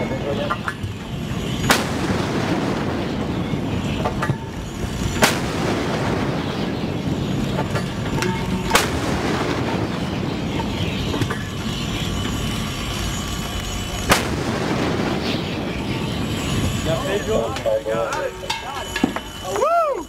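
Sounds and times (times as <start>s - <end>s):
steady low rush: 0.0s - 20.0s.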